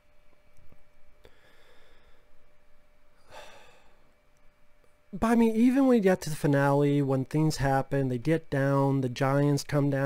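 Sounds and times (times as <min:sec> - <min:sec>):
low steady hum: 0:00.0 - 0:10.0
breath into microphone: 0:01.2 - 0:02.4.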